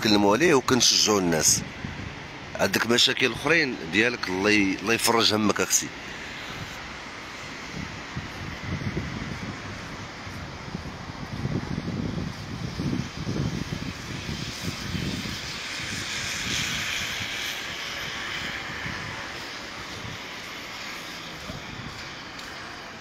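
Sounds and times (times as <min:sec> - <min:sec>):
wind buffeting microphone: 0:00.0 - 0:23.0
broad hiss: 0:03.9 - 0:23.0.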